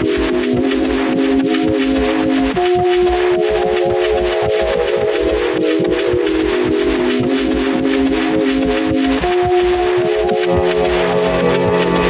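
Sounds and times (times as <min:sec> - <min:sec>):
beat of quick ticks and thumps: 0:00.0 - 0:12.0
sustained chord tones: 0:00.0 - 0:12.0.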